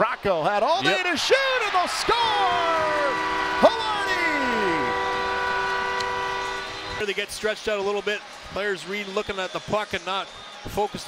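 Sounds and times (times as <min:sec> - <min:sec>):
goal horn air-horn chord: 0:02.2 - 0:07.2.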